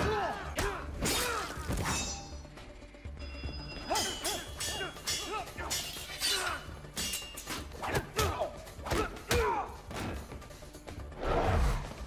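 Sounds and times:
dramatic music score: 0.0 - 12.0
glass shattering: 3.9 - 7.6.

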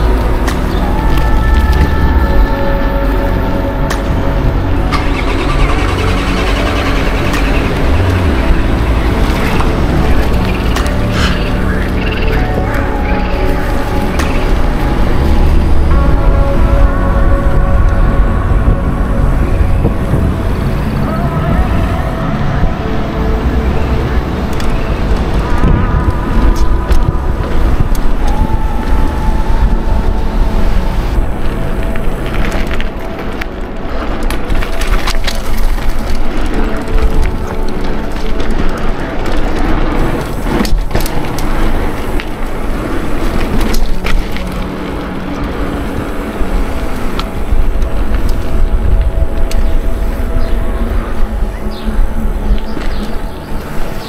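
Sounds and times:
bike tyre rumble on pavement: 0.0 - 54.0
wind rushing over microphone: 0.0 - 54.0.

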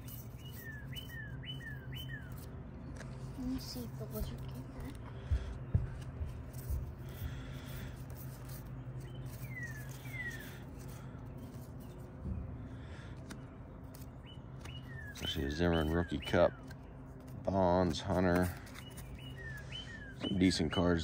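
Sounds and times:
steady low hum: 0.0 - 21.0.

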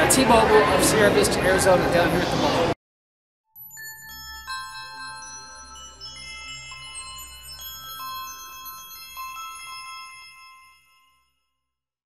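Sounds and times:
bell-like chime music: 3.5 - 11.8.

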